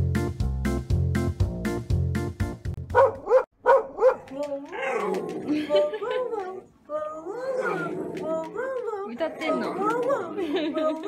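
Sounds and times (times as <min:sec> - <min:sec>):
dog yelping barks: 0:02.9 - 0:05.3
dog howling: 0:06.4 - 0:10.3.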